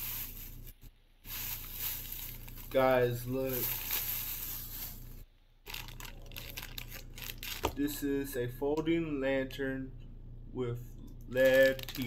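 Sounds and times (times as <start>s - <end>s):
plastic bag rustling and crinkling: 0.0s - 7.8s, 11.4s - 12.0s.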